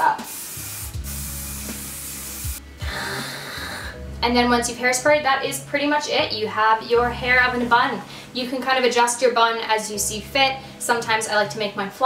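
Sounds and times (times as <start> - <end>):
aerosol hairspray spraying: 0.0 - 2.6.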